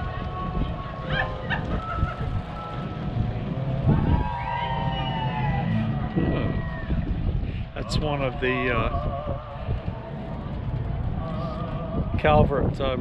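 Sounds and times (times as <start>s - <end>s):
wind rumbling on microphone: 0.0s - 13.0s.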